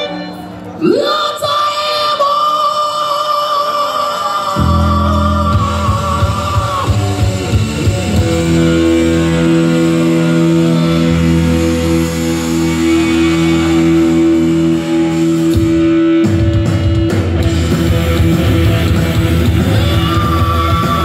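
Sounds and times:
heavy metal band playing live: 4.6s - 21.0s.

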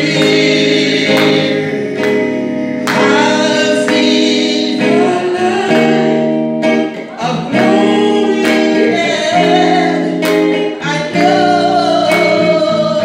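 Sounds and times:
instrumental accompaniment: 0.0s - 13.0s
woman singing into a microphone: 7.2s - 10.2s, 10.8s - 13.0s.

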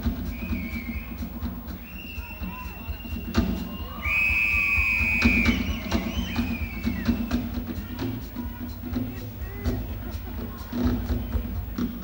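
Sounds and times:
high whistle-like tone: 0.2s - 7.3s.

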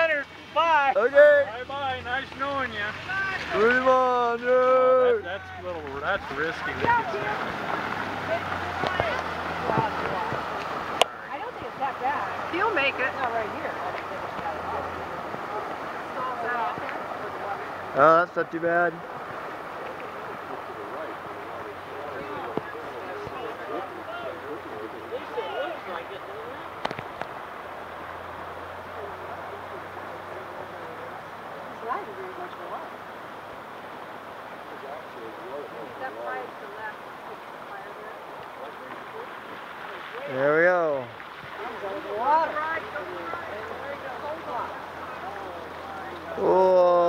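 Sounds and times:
quiet voices: 0.0s - 47.0s
steady background hiss: 0.0s - 47.0s
water washing around vehicle: 0.0s - 47.0s
distant engine hum: 5.4s - 40.3s, 41.0s - 47.0s.

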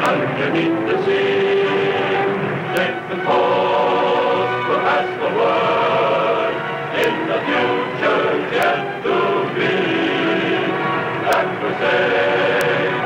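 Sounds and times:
choir singing sustained chords: 0.0s - 13.0s
theme music: 0.0s - 13.0s.

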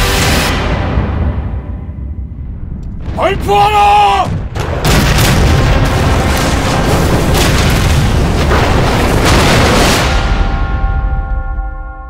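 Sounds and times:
cannon fire and explosions: 0.0s - 11.7s
dense low rumble: 0.6s - 11.4s
sharp blasts: 3.0s - 10.8s.

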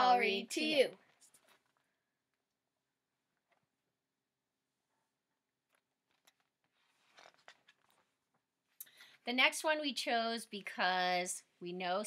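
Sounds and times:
book pages rustling: 5.7s - 8.5s.

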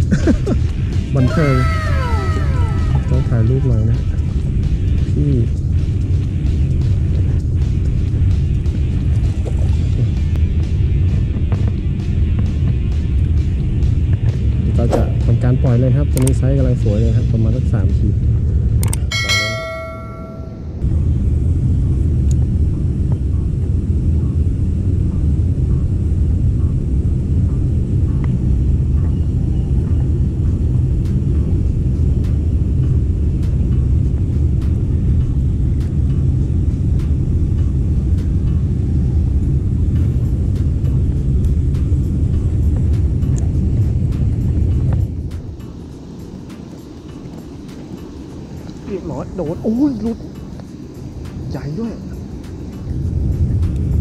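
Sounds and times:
wind rumble on microphone: 0.0s - 20.0s, 20.8s - 54.0s
short bell-like chime: 19.1s - 20.8s.

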